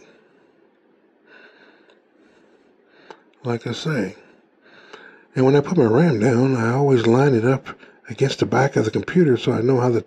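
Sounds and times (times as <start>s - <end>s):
faint breathing: 0.0s - 3.4s, 4.2s - 5.4s, 7.7s - 8.1s.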